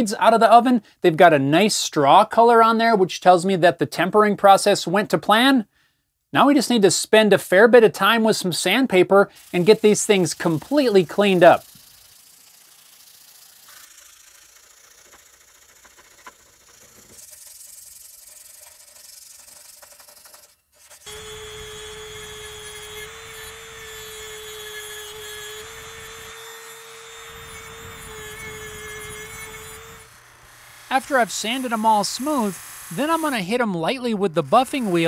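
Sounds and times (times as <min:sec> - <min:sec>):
sandpaper sanding steel blade: 0:09.3 - 0:30.1, 0:30.7 - 0:35.0
rotary tool whining: 0:09.4 - 0:33.5, 0:34.4 - 0:35.0.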